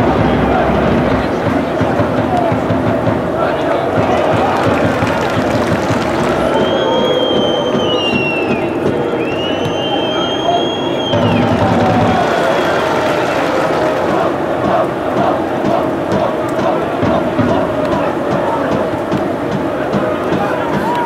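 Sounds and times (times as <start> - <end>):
stadium crowd shouting: 0.0 - 21.0
long whistled tones sliding down: 6.4 - 11.5.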